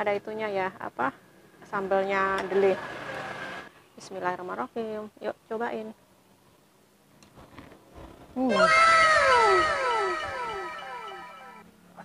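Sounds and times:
meow-like call with echo: 8.5s - 11.6s.

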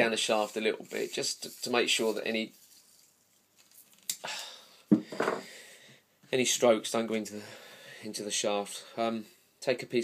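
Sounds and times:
masking tape peeling: 0.8s - 4.2s.

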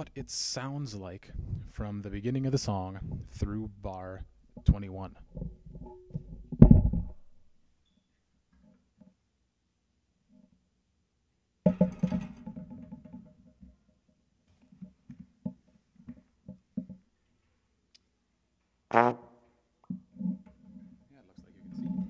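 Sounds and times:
thump of handling: 5.4s - 7.2s.

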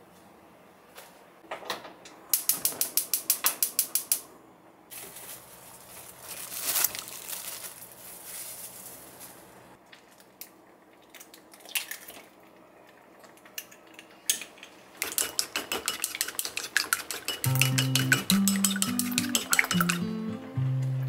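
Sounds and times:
chopsticks beating egg in bowl: 15.0s - 20.2s
music with low plucked notes: 17.5s - 21.0s.

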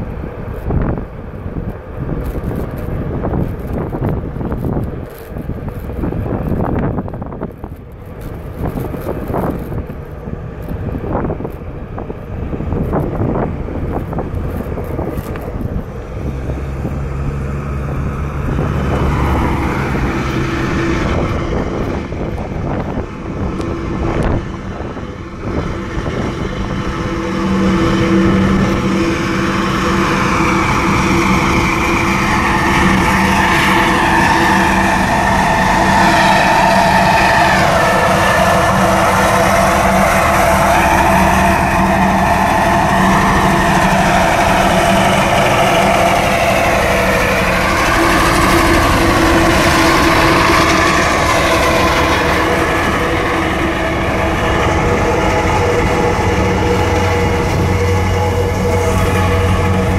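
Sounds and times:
rolling noise: 0.0s - 59.9s
electric board motor whining: 26.2s - 59.9s.

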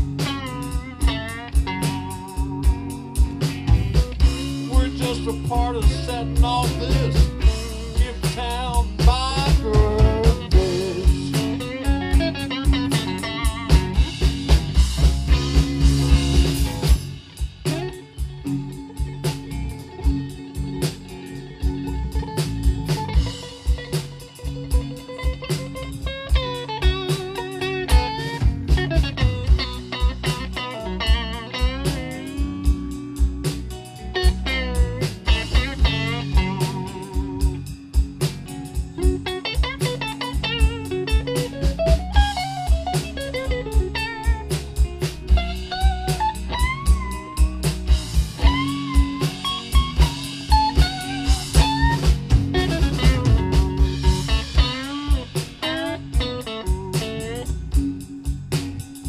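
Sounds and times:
bass guitar: 0.0s - 59.0s
drum kit: 0.0s - 59.0s
lead electric guitar: 0.0s - 59.0s
rhythm guitar: 0.0s - 59.0s.

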